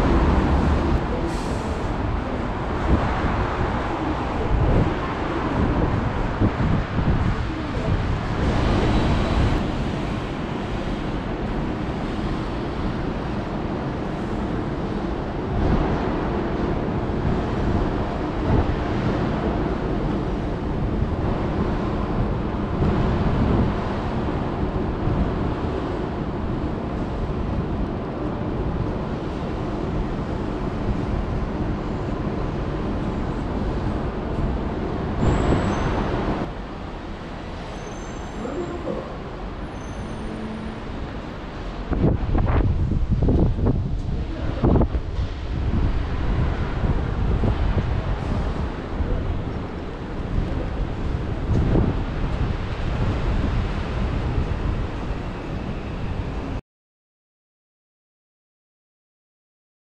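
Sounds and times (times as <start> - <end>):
wind buffeting microphone: 0.0 - 37.7, 40.8 - 56.6
city traffic engine hum: 0.0 - 56.6.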